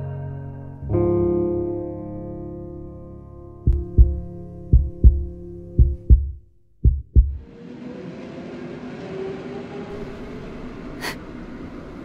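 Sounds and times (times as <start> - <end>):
sustained piano chord: 0.0 - 6.1
heartbeat thumps: 3.7 - 7.5.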